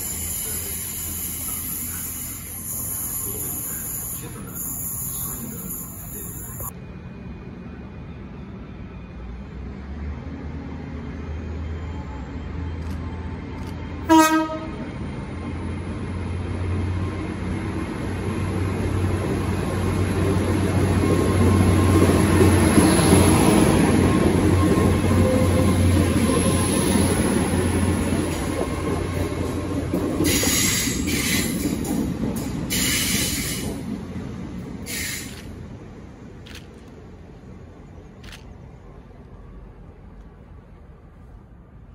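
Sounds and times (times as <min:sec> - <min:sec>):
train hum and wheel rumble: 0:00.0 - 0:41.9
train horn blast: 0:14.1 - 0:14.9.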